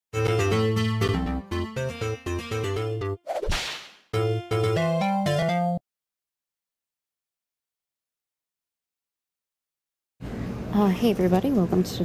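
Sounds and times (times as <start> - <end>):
cartoon whip-crack swish: 3.3 - 4.1
bouncy jingle: 4.2 - 5.8.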